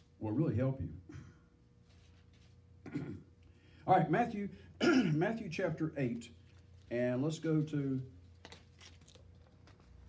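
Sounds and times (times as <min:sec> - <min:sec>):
low steady hum: 0:00.0 - 0:10.0
thin pages turning: 0:07.5 - 0:10.0.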